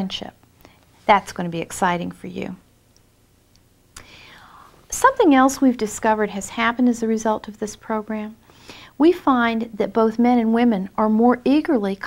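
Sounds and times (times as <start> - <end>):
woman breathing in: 4.0 - 4.8, 8.4 - 9.0.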